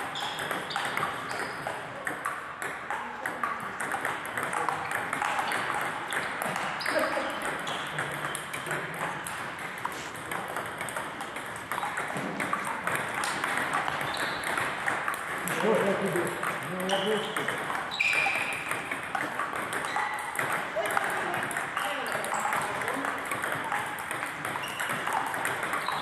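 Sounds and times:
table tennis balls clicking: 0.0 - 26.0.

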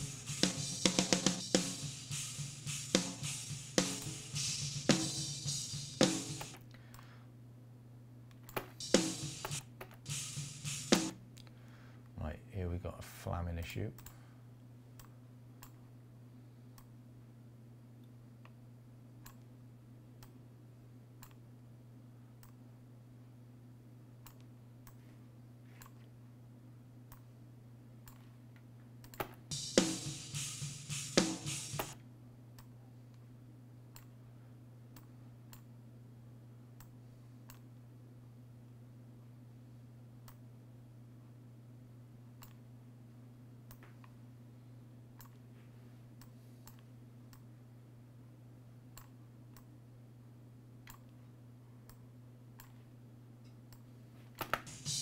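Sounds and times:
drum kit playback: 0.0 - 6.6, 8.8 - 11.2, 29.5 - 32.0, 54.5 - 55.0
steady low hum: 0.0 - 55.0
computer mouse clicking: 21.2 - 21.4, 22.4 - 22.6, 24.2 - 25.0, 28.0 - 28.3, 33.9 - 34.1, 42.4 - 42.6, 46.2 - 47.5, 50.9 - 51.2.

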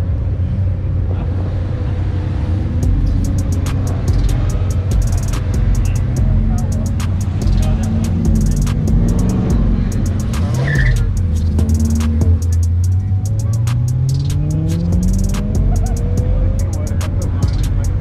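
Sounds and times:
cars driving past: 0.0 - 18.0
music with fast hi-hat beat: 2.8 - 18.0.

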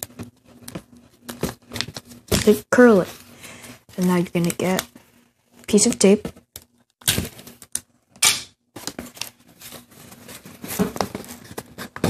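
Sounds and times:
paper crinkling and rustling: 0.0 - 7.7, 8.8 - 12.0.

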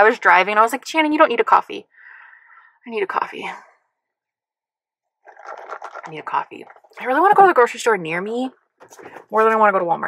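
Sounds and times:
sipping through a plastic straw: 5.2 - 7.0.

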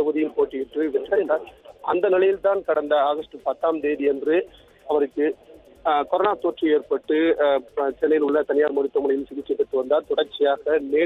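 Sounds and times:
news reporter narrating: 0.0 - 11.0.

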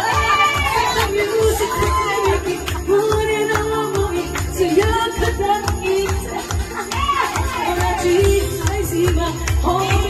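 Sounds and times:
voices shouting and singing along: 0.0 - 3.8, 4.9 - 9.1
karaoke backing track: 0.0 - 10.0.

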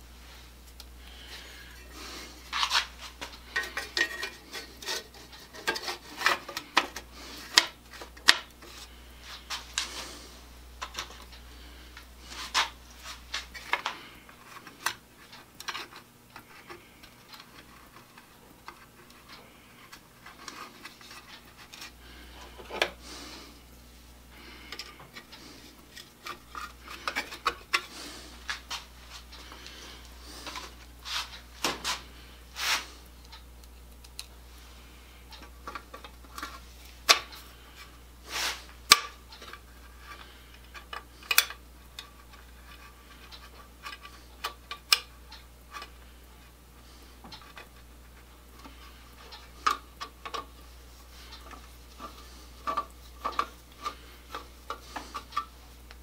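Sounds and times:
clicks and scrapes of handling: 0.6 - 23.4, 24.4 - 56.0.

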